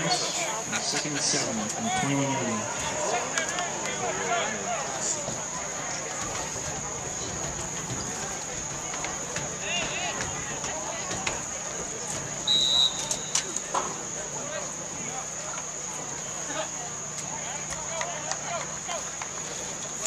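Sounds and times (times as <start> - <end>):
spectators chatting: 0.0 - 20.0
referee's whistle blast: 12.5 - 13.6.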